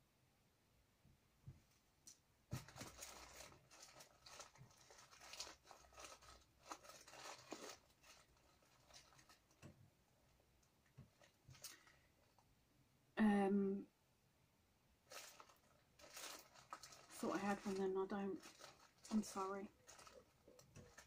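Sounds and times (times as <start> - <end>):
paper packets rustling: 2.5 - 9.7, 15.1 - 21.0.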